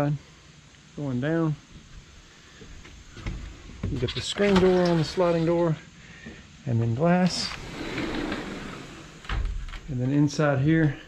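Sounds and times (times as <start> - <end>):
faint background hiss: 0.0 - 11.0
footsteps on wooden deck: 2.6 - 4.8.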